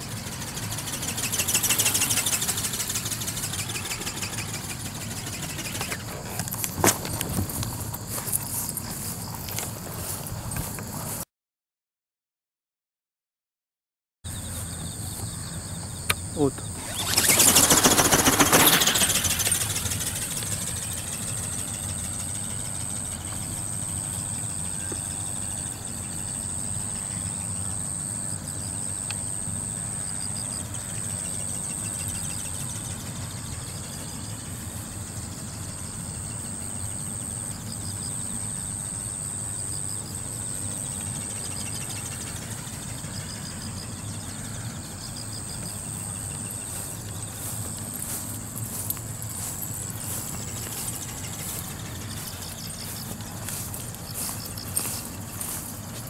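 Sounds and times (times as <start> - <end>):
electric ornithopter motor whine: 0.0 - 11.1, 14.4 - 56.0.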